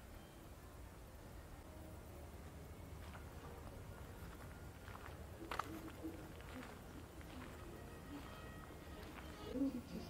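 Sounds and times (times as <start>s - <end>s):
faint outdoor ambience: 0.0s - 10.0s
soft steps on a sandy path: 2.4s - 9.6s.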